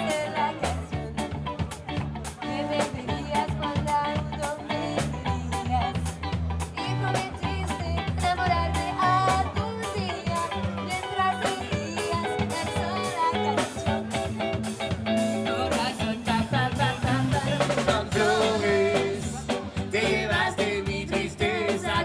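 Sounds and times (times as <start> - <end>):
drum kit beat: 0.0 - 22.0
electric bass: 0.0 - 22.0
electric guitar: 0.0 - 22.0.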